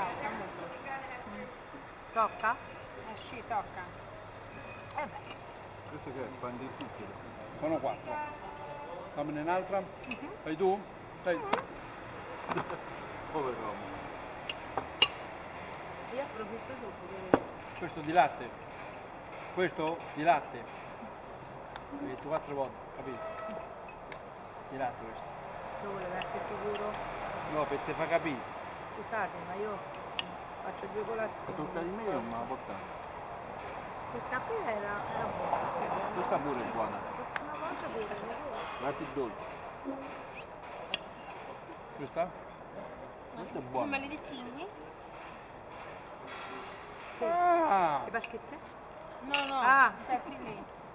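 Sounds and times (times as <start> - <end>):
background hubbub: 0.0 - 50.9
glass and cutlery clinking: 10.0 - 10.3, 14.4 - 15.9, 25.9 - 27.0, 49.2 - 49.7
tableware clink: 49.3 - 49.7.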